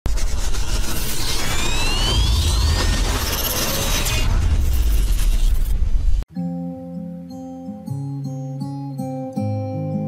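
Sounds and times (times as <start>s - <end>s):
deep rumble: 0.3s - 6.2s
rising whistling tone: 1.0s - 4.4s.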